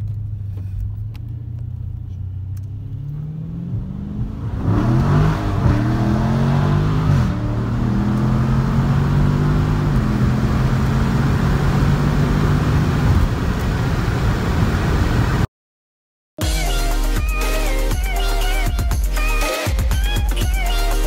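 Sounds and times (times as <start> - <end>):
car engine accelerating: 0.0 - 15.4.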